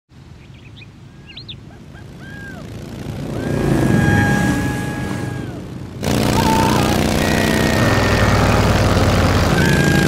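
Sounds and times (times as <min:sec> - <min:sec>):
birds chirping: 0:00.1 - 0:10.0
motorcycles passing: 0:01.2 - 0:10.0.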